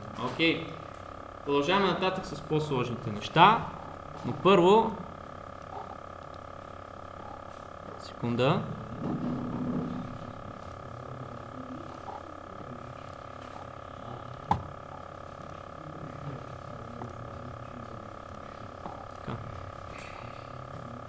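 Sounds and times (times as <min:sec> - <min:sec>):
steady hum of fixed tones: 0:00.0 - 0:21.0.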